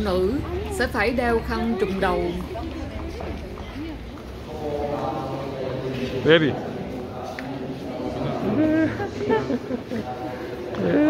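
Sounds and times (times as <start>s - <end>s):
crowd talking faintly: 0.0s - 11.0s.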